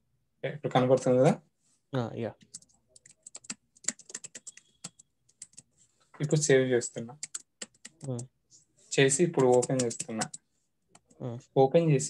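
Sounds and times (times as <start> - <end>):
keyboard typing: 2.4 - 6.5, 7.1 - 8.4, 9.1 - 11.2.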